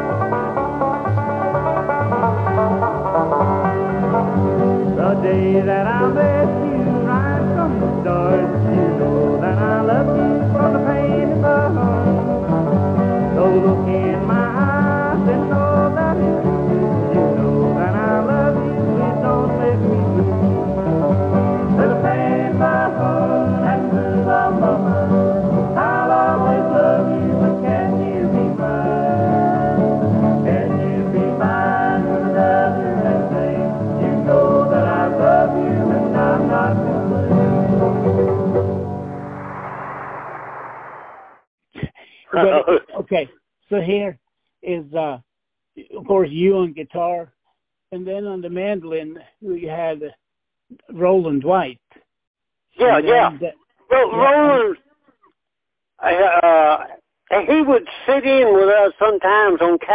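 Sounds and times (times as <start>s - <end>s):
acoustic string band playing: 0.0s - 40.4s
person singing: 4.8s - 12.3s, 13.2s - 16.7s, 17.4s - 20.7s, 21.6s - 38.2s.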